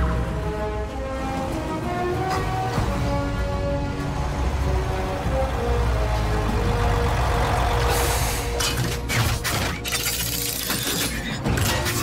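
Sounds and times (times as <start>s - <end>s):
film soundtrack music: 0.0s - 12.0s.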